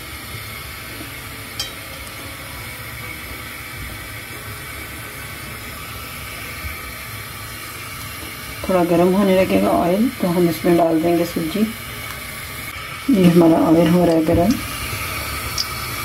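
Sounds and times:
steady hiss: 0:00.0 - 0:16.0.

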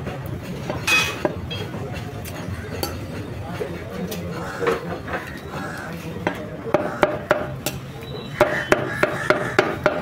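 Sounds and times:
murmur of voices: 0:00.0 - 0:10.0
cleaver chopping on wooden block: 0:08.4 - 0:10.0.

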